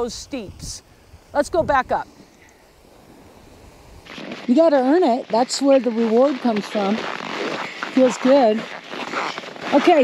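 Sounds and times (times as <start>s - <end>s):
skis sliding on snow: 4.0s - 10.0s.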